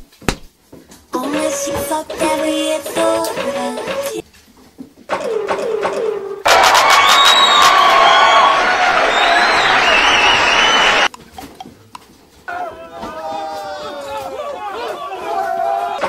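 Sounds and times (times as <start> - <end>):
crowd cheering and shrieking: 6.4 - 11.1, 12.5 - 16.0.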